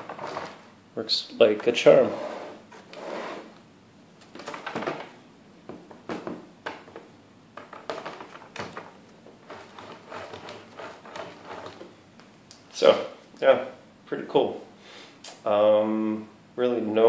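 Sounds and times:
plastic knocking and scraping: 0.0 - 0.6, 5.7 - 11.9.

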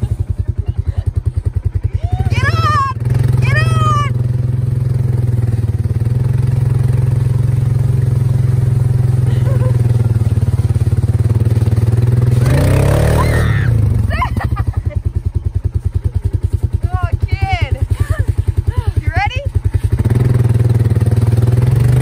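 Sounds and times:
small engine idling: 0.0 - 22.0.

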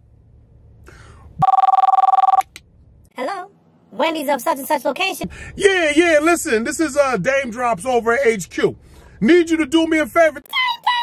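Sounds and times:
telephone ringing: 1.4 - 2.4.

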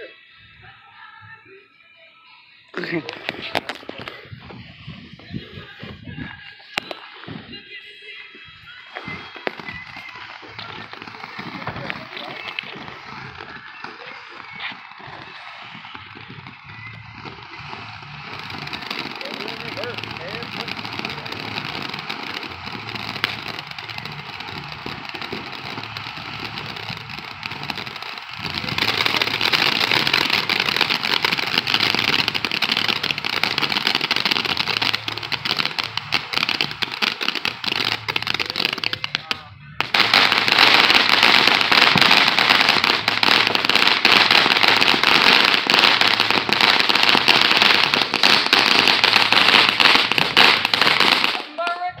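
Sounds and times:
firework fountain hissing crackle: 0.0 - 52.0.

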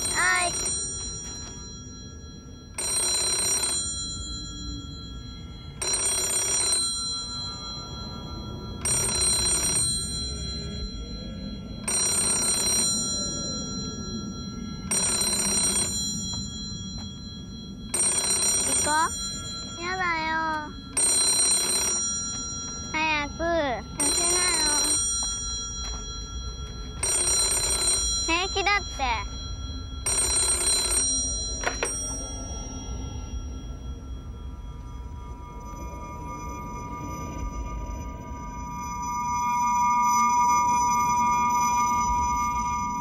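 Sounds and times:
payphone ringing: 0.0 - 43.0
child speaking: 0.1 - 0.6, 18.7 - 19.2, 19.8 - 20.7, 23.0 - 24.9, 28.3 - 29.3.

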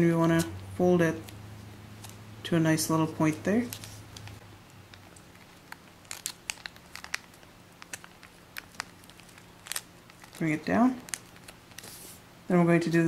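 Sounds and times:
paper crackling and rustling: 3.6 - 12.2.

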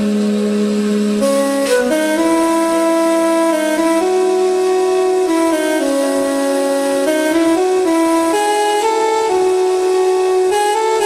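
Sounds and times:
flute melody: 0.0 - 11.0
sustained lower notes: 0.0 - 11.0.

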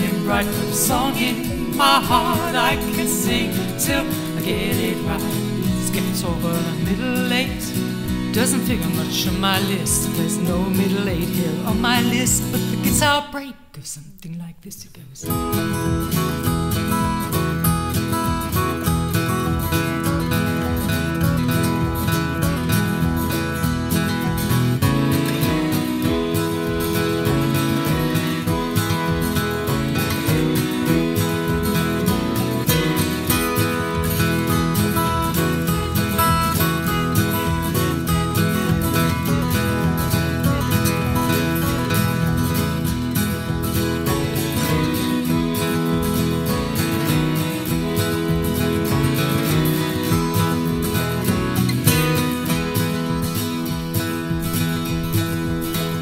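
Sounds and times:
steady beat: 0.0 - 13.0, 15.4 - 56.0
acoustic guitar melody: 0.0 - 13.6, 15.2 - 56.0.

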